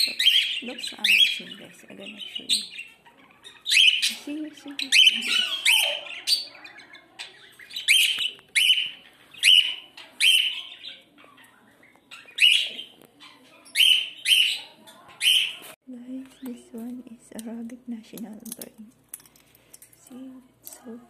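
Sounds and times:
birds chirping: 0.0s - 16.7s.

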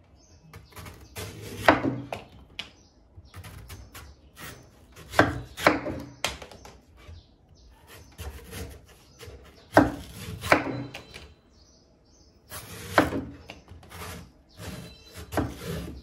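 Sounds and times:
knife slicing coconut husk: 0.5s - 2.2s, 3.3s - 6.1s, 7.8s - 11.2s, 12.5s - 16.0s.

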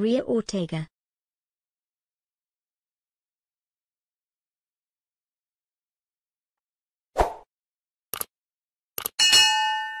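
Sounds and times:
bell notification chime: 9.2s - 10.0s.

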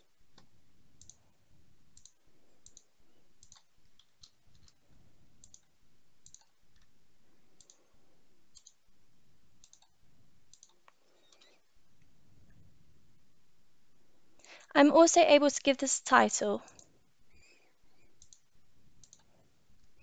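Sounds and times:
low background hum: 0.0s - 20.0s
mouse and keyboard clicks: 2.0s - 4.8s, 5.4s - 6.9s, 8.5s - 8.8s, 9.6s - 9.9s.

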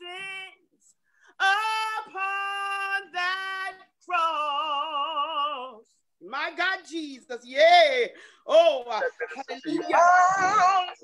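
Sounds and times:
man singing unaccompanied: 1.4s - 6.4s.

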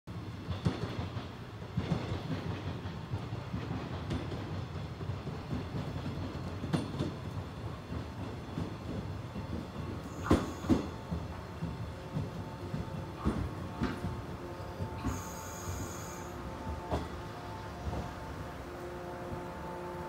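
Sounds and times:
train wheels rumbling on rails: 0.1s - 20.0s.

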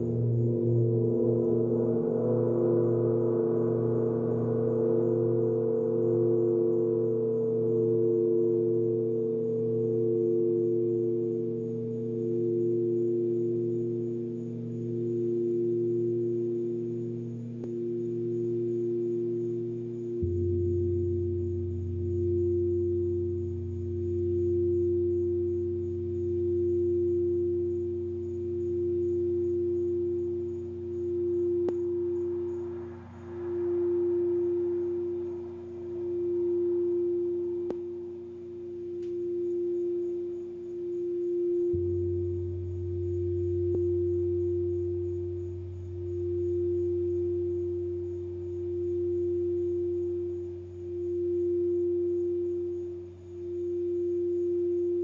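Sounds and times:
crystal singing bowl tone: 0.0s - 55.0s
deep humming tones: 0.0s - 55.0s.

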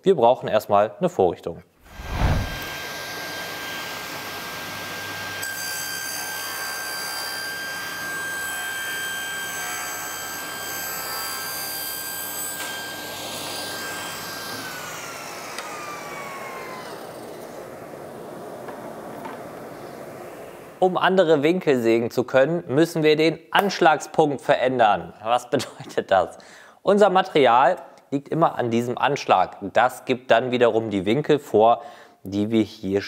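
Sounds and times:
saw cutting through board: 2.4s - 17.7s
table saw whining: 2.6s - 20.2s
saw blade spinning down: 10.2s - 19.6s.

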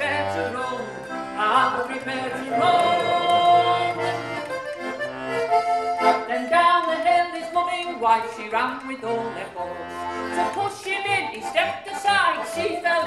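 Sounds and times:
squeezebox playing a tune: 2.3s - 6.2s.

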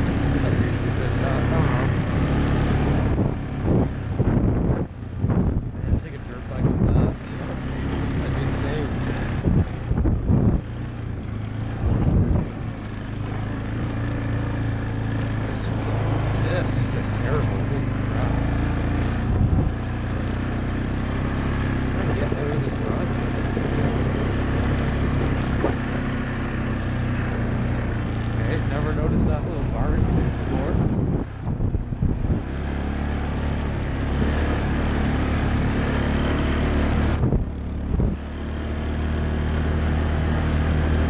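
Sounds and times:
atv engine running: 0.0s - 41.0s.

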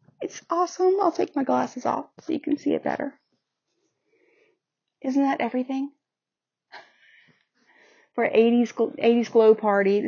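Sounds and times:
faint breathing: 3.8s - 4.7s, 6.8s - 8.2s.

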